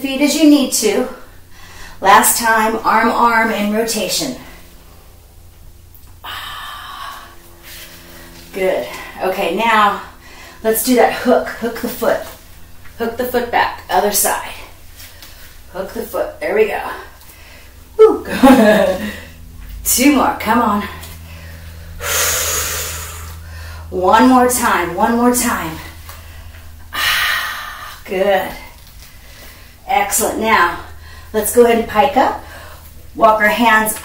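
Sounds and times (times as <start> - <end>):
woman exhaling hard: 22.0 - 23.9.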